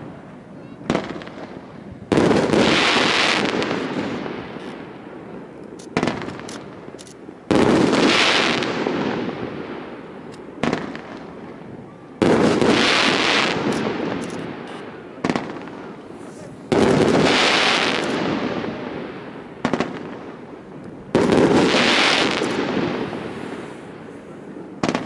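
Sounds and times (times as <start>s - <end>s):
firework burst: 0.8s - 25.0s.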